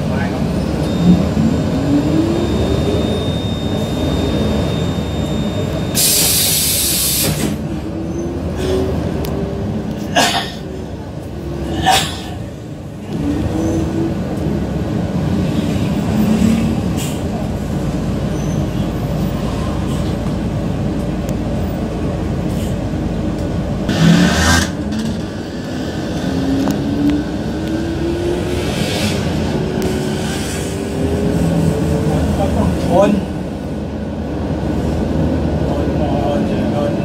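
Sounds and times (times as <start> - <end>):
rising engine whine: 0.0 - 10.0, 23.1 - 36.2
bus engine and road noise: 0.0 - 37.0.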